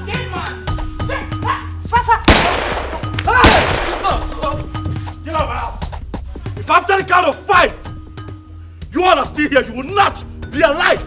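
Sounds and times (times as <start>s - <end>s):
background music: 0.0s - 11.0s
loud gunshots: 2.3s - 4.4s.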